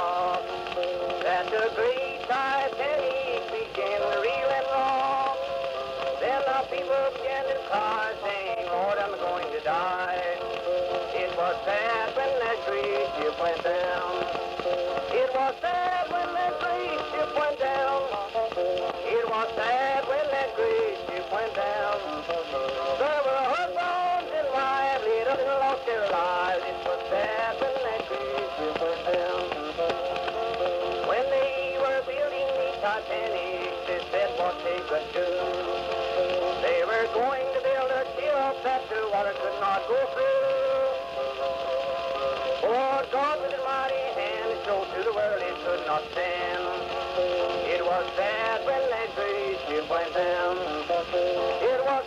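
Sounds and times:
old country song on phonograph: 0.0 - 52.0.

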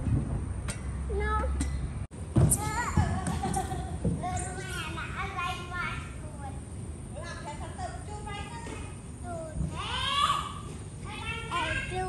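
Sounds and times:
young children calling and babbling: 2.5 - 6.6, 7.2 - 12.0.

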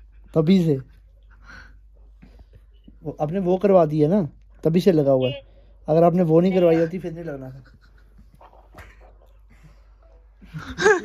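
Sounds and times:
stifled laughter: 7.4 - 11.0.

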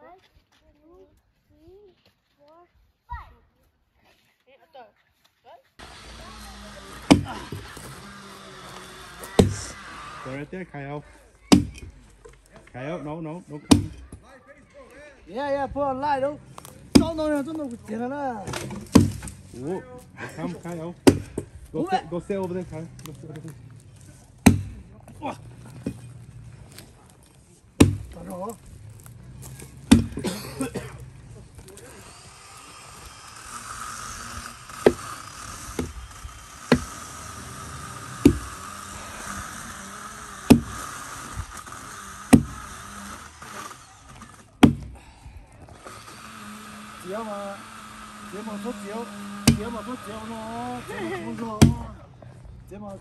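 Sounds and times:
axe chopping into log: 5.8 - 8.1, 8.8 - 9.9, 11.5 - 11.9, 13.6 - 14.2, 16.6 - 17.5, 18.5 - 19.5, 21.0 - 21.5, 24.4 - 26.1, 27.8 - 30.8, 34.7 - 35.9, 36.6 - 37.0, 38.0 - 38.8, 40.4 - 40.9, 42.3 - 42.7, 44.2 - 45.0, 49.3 - 49.8, 51.5 - 52.0.

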